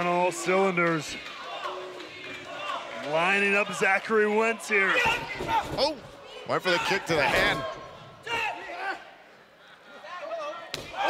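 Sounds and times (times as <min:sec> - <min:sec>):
faint arena crowd murmur: 0:00.0 - 0:11.0.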